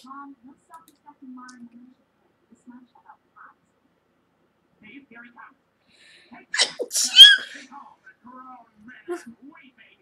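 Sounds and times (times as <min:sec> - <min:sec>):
woman sneezing: 0:06.6 - 0:07.6.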